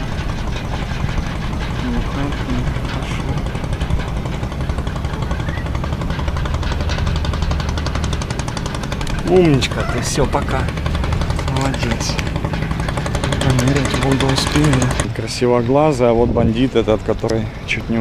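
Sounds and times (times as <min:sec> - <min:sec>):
engine idling: 0:00.0 - 0:18.0.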